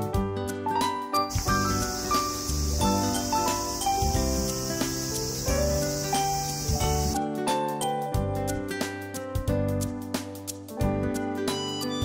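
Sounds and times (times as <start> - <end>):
simple background melody: 0.0 - 12.0
high-pitched insect drone: 1.3 - 7.2.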